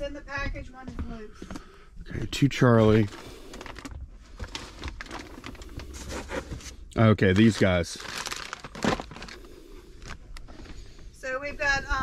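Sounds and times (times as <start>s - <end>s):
plastic wrapping crinkling: 3.0s - 10.7s.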